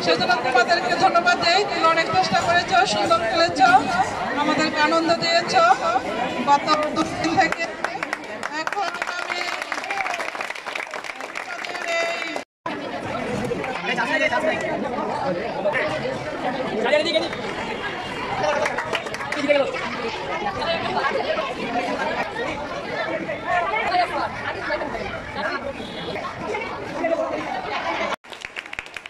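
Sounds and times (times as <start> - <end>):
crowd chattering: 0.0 - 29.0.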